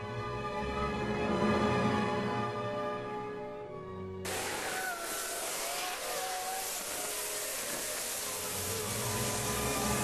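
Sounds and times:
music: 0.0s - 4.3s, 8.5s - 10.0s.

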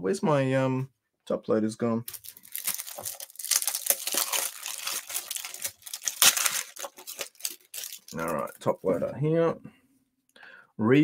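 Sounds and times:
crinkly packaging rustling: 2.1s - 9.1s.

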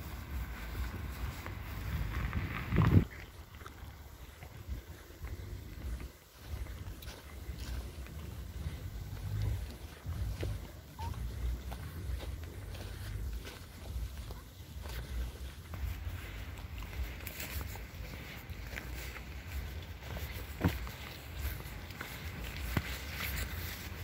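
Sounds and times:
footsteps on dirt path: 0.0s - 24.0s
microphone handling rumble: 1.5s - 3.2s.

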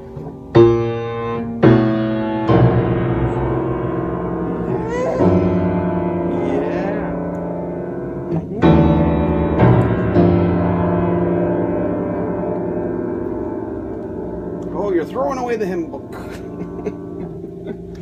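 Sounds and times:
piano note clusters: 0.0s - 18.0s.

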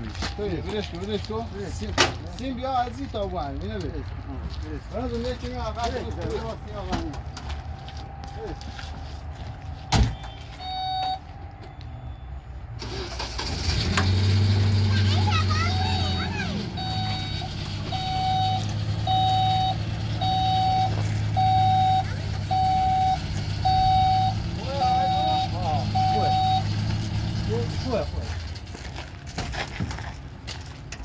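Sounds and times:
truck engine idling: 6.3s - 29.3s
reversing alarm beeping: 9.9s - 12.5s, 15.2s - 26.8s.

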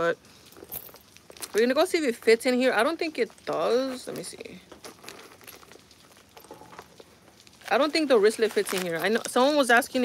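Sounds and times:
faint rustling of leather bag: 0.0s - 10.0s.

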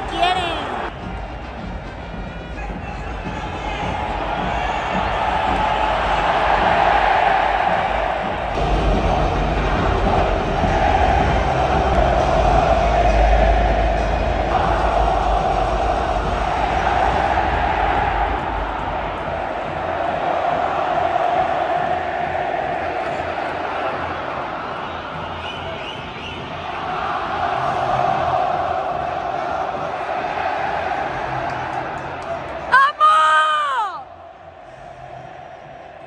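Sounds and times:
music over pa system: 0.0s - 20.9s
stadium crowd roaring and cheering: 0.0s - 36.0s.

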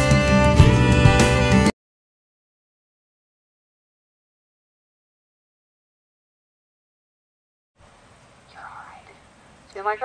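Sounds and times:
background hiss: 7.8s - 10.0s
faint breathy whisper: 8.5s - 9.2s
woman speaking: 8.5s - 10.0s.

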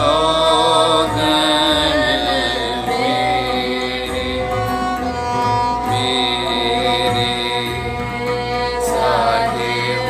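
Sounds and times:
bowed strings playing melody: 0.0s - 10.0s
steady drone: 0.0s - 10.0s
voices singing: 0.0s - 10.0s.

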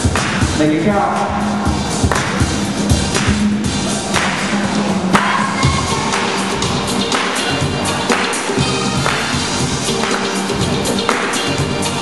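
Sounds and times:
loud music with steady beat: 0.0s - 12.0s.

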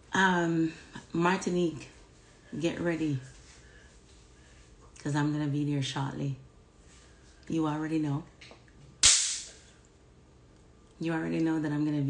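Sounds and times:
sharp burst of hissing: 9.0s - 9.6s.

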